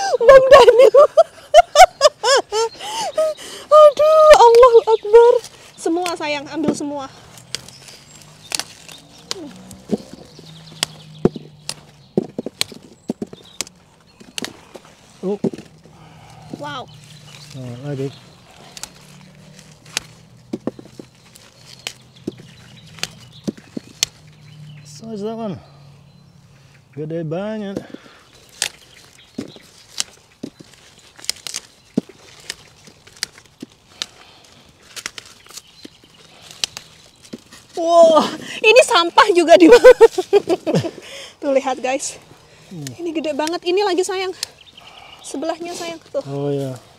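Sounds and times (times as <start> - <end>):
sprouts snapping off stalk: 3.8 - 24.8, 27.7 - 40.9, 41.6 - 46.9.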